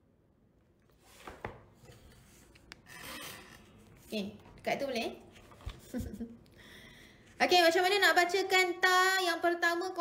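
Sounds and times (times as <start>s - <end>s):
faint rubbing and handling noise: 0.8s - 6.2s.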